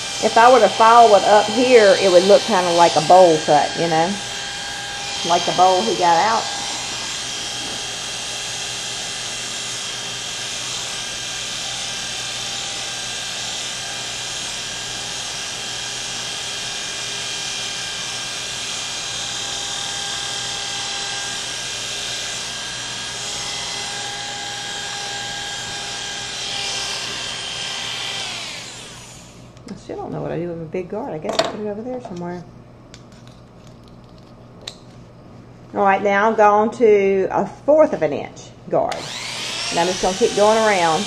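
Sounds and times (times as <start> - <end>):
clipper motor winding down: 0.0 - 29.5, 38.9 - 41.0
electric hair clippers humming: 0.0 - 29.6, 38.9 - 41.0.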